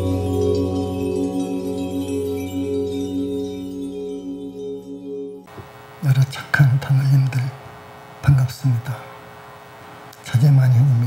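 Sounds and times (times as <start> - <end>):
ringing bell-like tones: 0.0 - 5.5.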